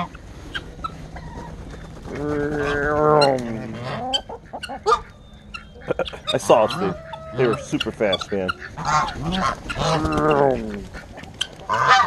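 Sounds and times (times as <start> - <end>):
poultry clucking and chirping: 0.0 - 12.0.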